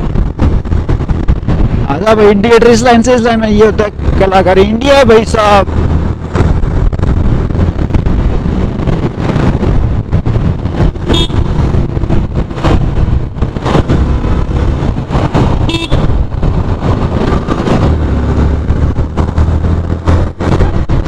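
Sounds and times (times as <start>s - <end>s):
road traffic: 0.0s - 21.0s
wind noise on microphone: 0.0s - 21.0s
motorcycle engine running: 5.6s - 21.0s
horn toots: 11.0s - 11.6s, 15.6s - 16.1s.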